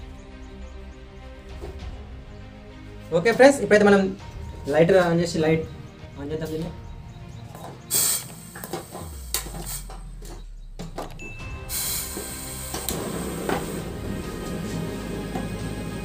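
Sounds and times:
background music: 0.0 - 16.0
gas burner hissing: 7.8 - 10.5, 11.5 - 16.0.

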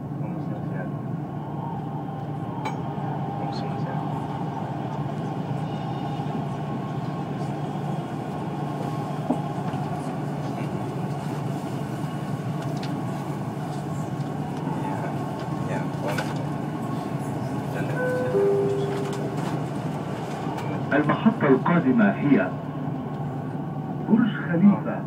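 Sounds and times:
train rumble and hum: 0.0 - 25.0
faint steady high tone: 17.9 - 19.6.

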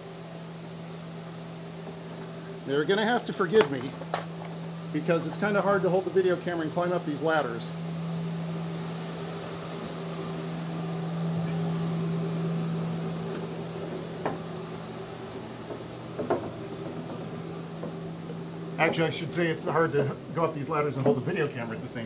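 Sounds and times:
pipe organ low held tone: 4.7 - 20.9
knocks on wooden ladder: 15.6 - 18.0.

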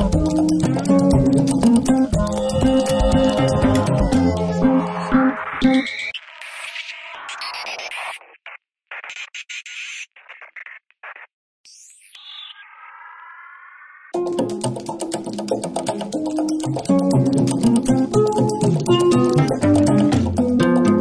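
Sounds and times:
electronic background music: 0.0 - 10.8, 11.7 - 21.0.

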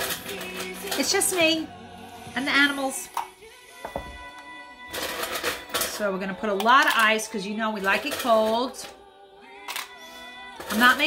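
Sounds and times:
ice cubes clinking into metal shaker: 0.0 - 1.5, 4.9 - 8.9
background music with held tones: 0.0 - 11.0.

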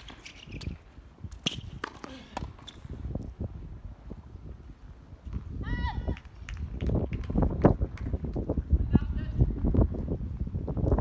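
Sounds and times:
ball bouncing: 0.0 - 2.8.

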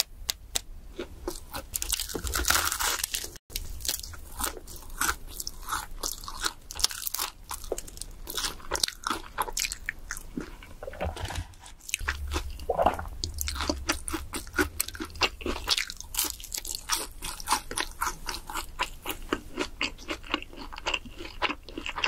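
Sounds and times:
crunching fried chicken: 1.0 - 10.8, 11.4 - 22.0
chewing: 1.0 - 22.0.

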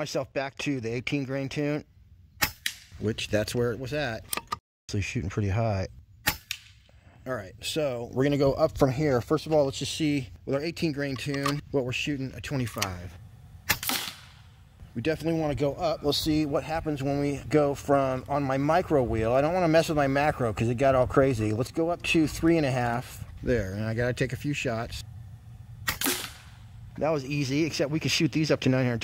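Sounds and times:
air rifle shot: 13.6 - 14.6, 25.8 - 26.9.

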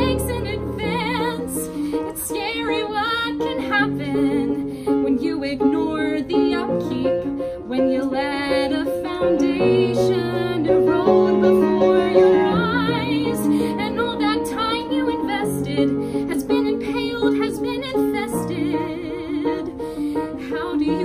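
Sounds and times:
piano accompaniment: 0.0 - 21.0
woman singing: 0.0 - 21.0.

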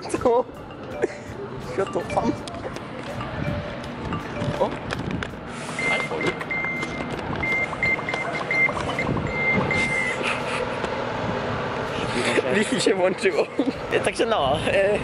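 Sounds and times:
street traffic: 0.0 - 15.0
reversing alarm beeping: 0.5 - 4.9, 5.6 - 10.4.

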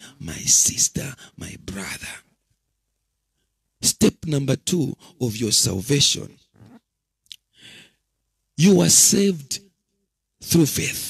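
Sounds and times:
man speaking into a microphone: 0.0 - 2.3, 3.8 - 6.4, 8.6 - 9.6, 10.4 - 11.0.

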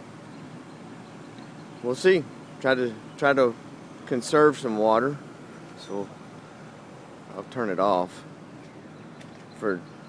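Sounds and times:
low background noise: 0.0 - 10.0
man speaking: 1.8 - 5.2, 5.8 - 6.2, 7.3 - 8.3, 9.6 - 9.8.

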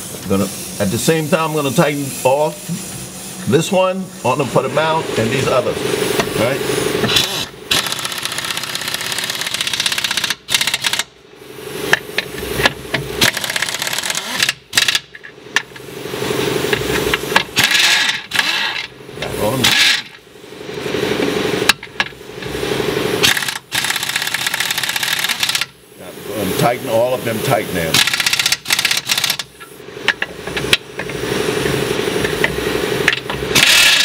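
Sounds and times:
pneumatic impact wrench hammering: 6.1 - 11.2, 11.8 - 15.9, 16.6 - 20.2, 21.2 - 22.6, 23.2 - 26.0, 27.9 - 34.0.

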